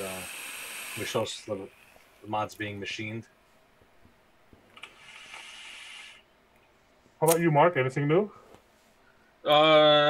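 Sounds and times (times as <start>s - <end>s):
airy hiss of vape draw: 4.8s - 6.2s.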